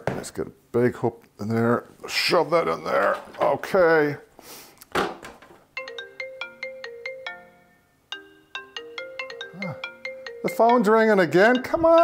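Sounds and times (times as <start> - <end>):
phone ringtone melody: 5.8 - 12.0.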